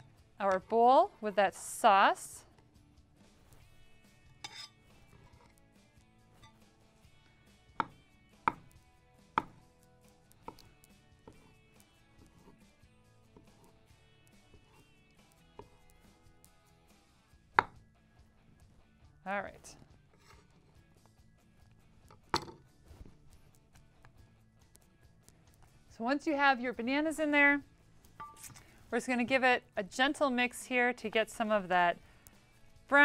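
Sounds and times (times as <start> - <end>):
knife knocking on wooden board: 7.8 - 8.7, 9.4 - 9.6.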